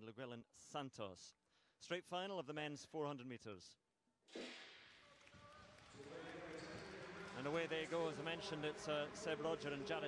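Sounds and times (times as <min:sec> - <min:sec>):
crowd noise and voices: 0:05.2 - 0:10.0.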